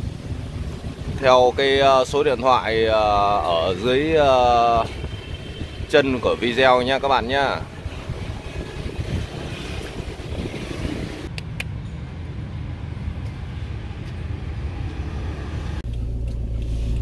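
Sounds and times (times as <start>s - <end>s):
scooters and cars passing: 0.0s - 15.8s.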